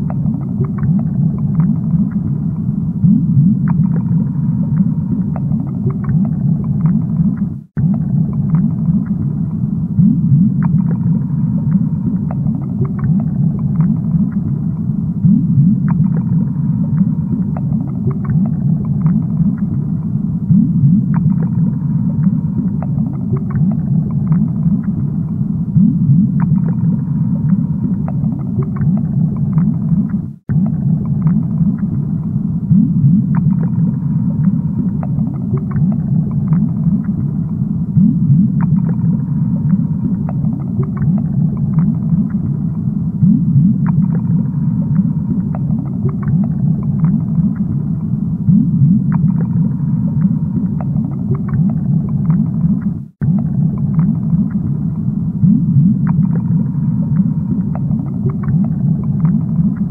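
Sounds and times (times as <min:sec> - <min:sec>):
bubbling: 0:00.0 - 0:59.9
low underwater rumble: 0:00.0 - 0:59.9.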